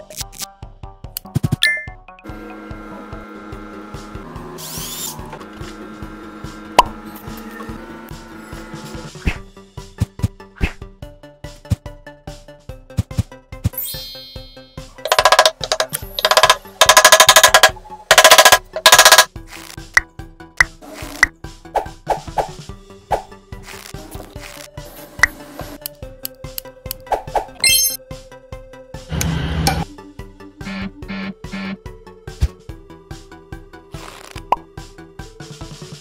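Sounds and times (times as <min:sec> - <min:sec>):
background music: 0:00.0 - 0:36.0
cable ties zipping tight: 0:19.4 - 0:20.0, 0:23.6 - 0:24.8, 0:34.0 - 0:34.6.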